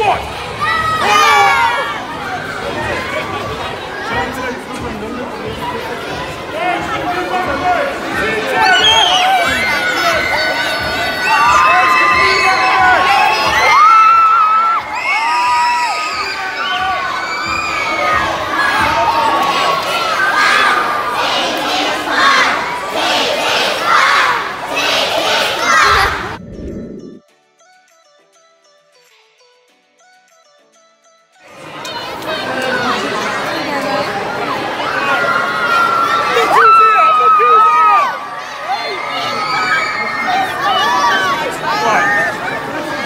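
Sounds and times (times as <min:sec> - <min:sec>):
children shouting and cheering: 0:00.2 - 0:04.2, 0:08.5 - 0:26.4, 0:34.5 - 0:43.0.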